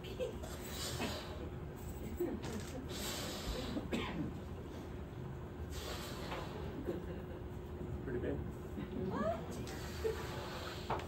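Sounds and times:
man breathing in from balloon: 5.7 - 6.7.

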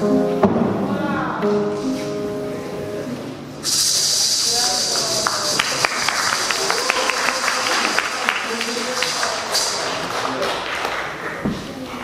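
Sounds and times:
held music notes: 0.0 - 3.7
high-pitched hiss: 1.7 - 5.5.

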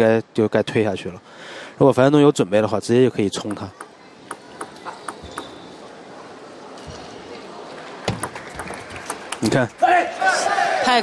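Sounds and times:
arena background noise: 0.0 - 11.0
table tennis ball bouncing: 3.3 - 5.7, 8.0 - 9.6.

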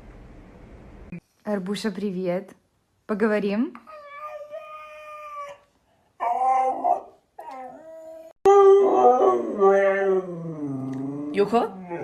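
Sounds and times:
dog howling: 3.9 - 12.0.

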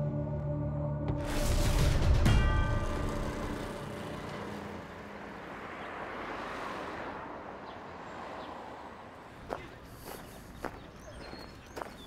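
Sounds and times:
background music: 0.0 - 5.4
motor vehicle passing: 2.8 - 11.9.

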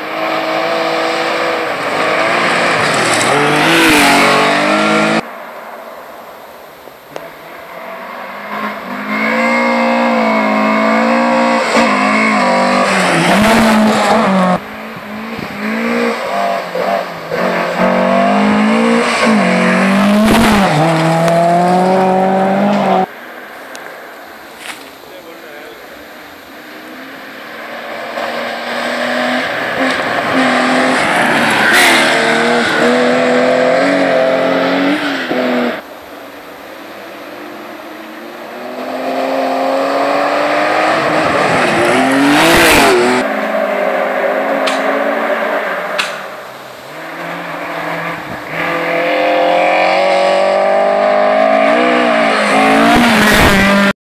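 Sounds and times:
rally car engines revving: 0.0 - 54.0
cars passing by loudly: 27.2 - 36.3.

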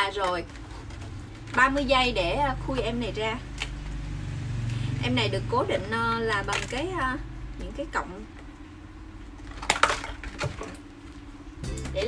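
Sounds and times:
plastic box packaging crackling: 9.4 - 10.9.

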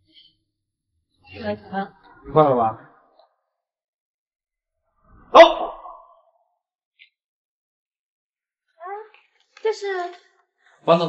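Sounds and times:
dog barking: 5.3 - 6.2.

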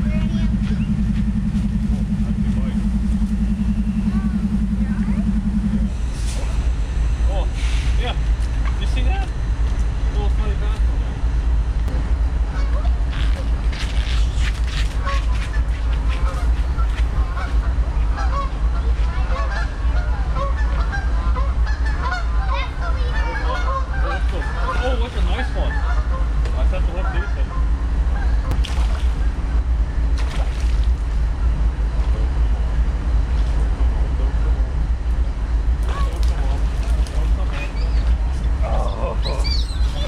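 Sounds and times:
low rumble: 0.0 - 40.0
geese honking: 15.0 - 26.3.

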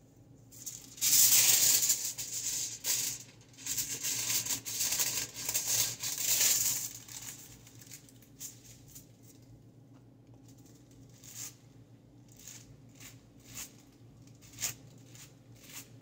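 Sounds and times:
foil crinkling and rustling: 1.0 - 9.1.

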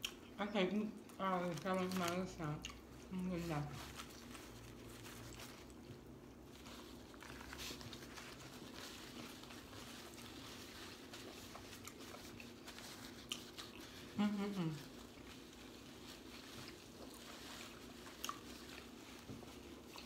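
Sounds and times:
chewing and biting sandwiches: 0.0 - 0.4, 1.0 - 20.0
paper wrap crinkling: 1.1 - 2.5, 3.1 - 20.0.

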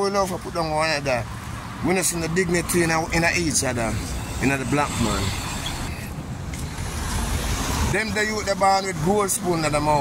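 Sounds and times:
car engine rumble with hiss: 0.1 - 10.0.

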